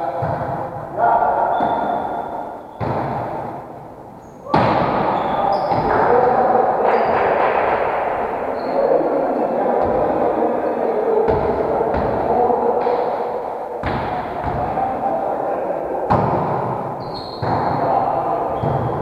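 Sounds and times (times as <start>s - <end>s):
background din in hall: 0.0s - 19.0s.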